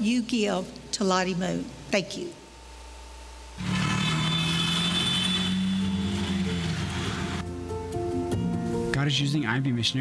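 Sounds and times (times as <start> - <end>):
auto-rickshaw engine running: 3.6 - 7.4
street traffic noise: 3.6 - 7.4
soft background music: 5.6 - 10.0.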